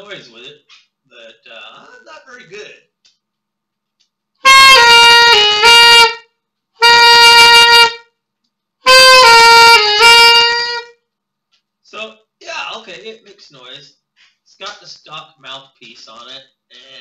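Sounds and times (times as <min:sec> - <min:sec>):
alto saxophone playing: 0:04.4 - 0:08.2, 0:08.8 - 0:11.0.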